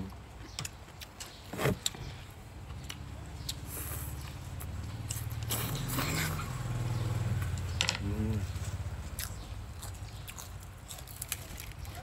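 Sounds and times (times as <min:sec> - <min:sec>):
person chewing and biting: 0:09.1 - 0:12.0.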